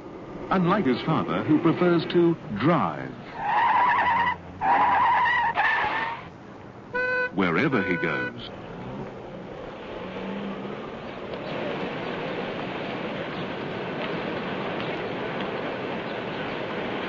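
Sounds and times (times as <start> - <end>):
city street traffic noise: 0.0 - 17.0.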